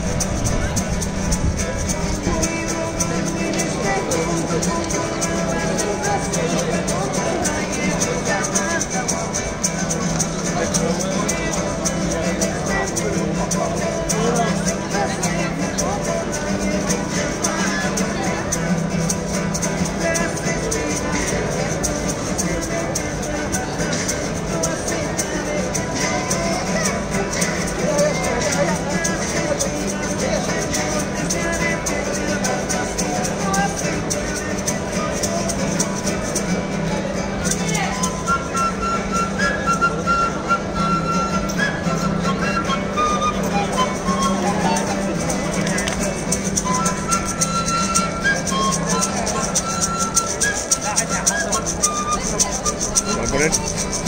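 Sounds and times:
acoustic guitar strumming: 0.0 - 54.0
maraca rattle: 0.0 - 54.0
flute playing held notes: 37.7 - 54.0.

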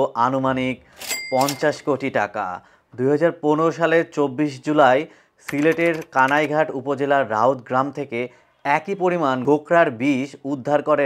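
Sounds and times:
man narrating: 0.0 - 11.0.

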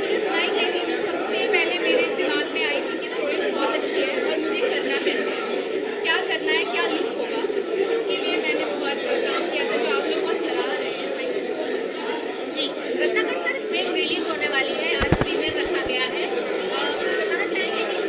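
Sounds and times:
crowd chatter: 0.0 - 18.0.

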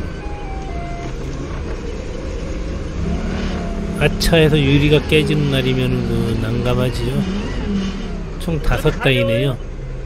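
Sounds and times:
forklift engine rumbling: 0.0 - 10.0.

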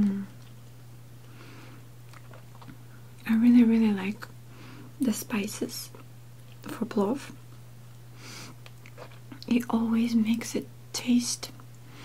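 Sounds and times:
soft chewing: 0.0 - 1.4, 2.0 - 3.3, 5.9 - 10.5
steady low hum: 0.0 - 12.0.

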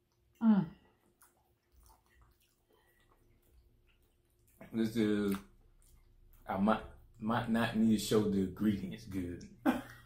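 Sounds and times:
mouths chewing cake: 0.0 - 8.0.

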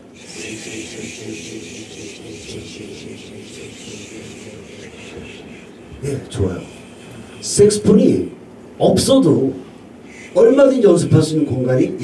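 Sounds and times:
group of people hissing shh: 0.1 - 5.9, 6.5 - 7.6, 10.0 - 10.4.

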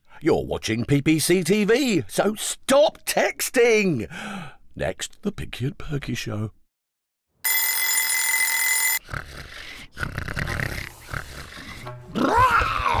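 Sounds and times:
cartoon pig snoring: 9.0 - 13.0.

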